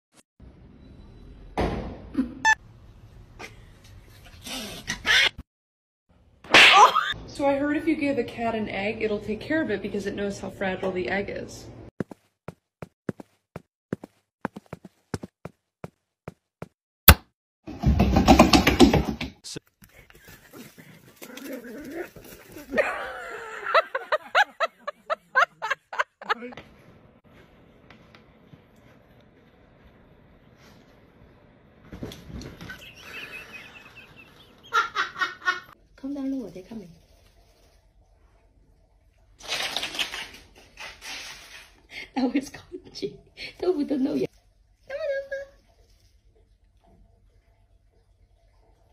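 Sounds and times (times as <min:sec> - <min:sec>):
rapid rustling and scratching: 0:19.7 - 0:22.7.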